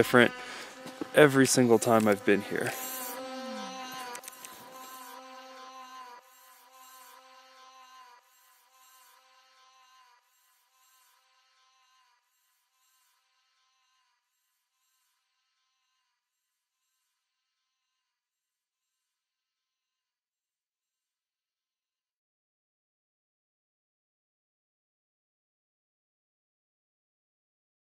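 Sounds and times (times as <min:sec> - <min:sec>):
drone propellers buzzing: 0:00.0 - 0:10.2.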